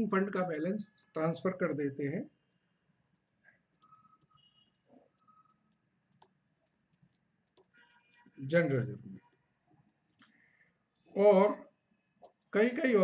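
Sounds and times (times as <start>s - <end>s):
stylus tapping on tablet: 2.5s - 7.8s.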